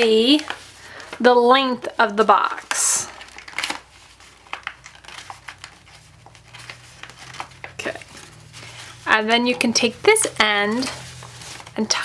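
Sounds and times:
paper folding and crinkling: 0:00.0 - 0:12.0.

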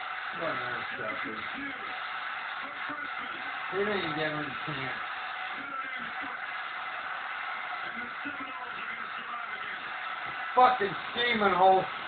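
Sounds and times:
stadium crowd noise: 0:00.0 - 0:12.0
faint commentator speech: 0:02.6 - 0:06.6, 0:07.8 - 0:12.0.

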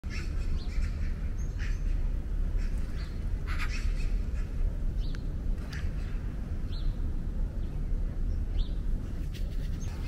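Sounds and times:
low steady rumble: 0:00.0 - 0:10.0
small birds chirping: 0:00.0 - 0:10.0.

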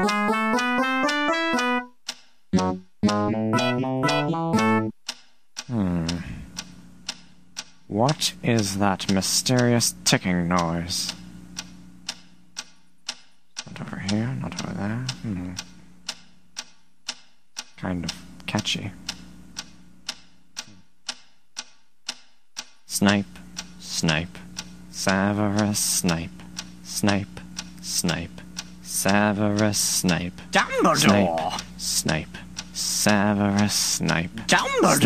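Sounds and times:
clock-like ticking: 0:00.0 - 0:35.0
low steady hum: 0:05.7 - 0:17.1, 0:22.9 - 0:35.0.

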